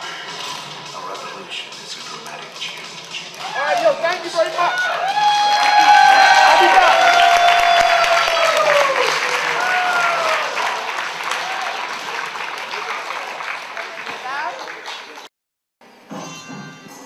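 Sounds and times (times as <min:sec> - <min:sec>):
audience applauding and cheering: 0:03.2 - 0:15.3.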